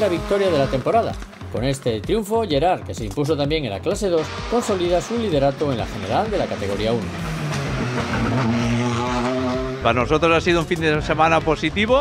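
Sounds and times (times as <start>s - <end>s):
man's voice: 0.0s - 7.3s, 9.8s - 12.0s
rally car engine pulling hard: 4.1s - 11.6s.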